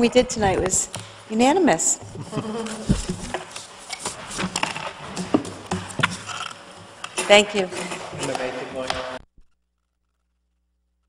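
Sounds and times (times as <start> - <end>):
steady buzzing hum: 0.0 - 9.2
low voices: 2.2 - 3.3.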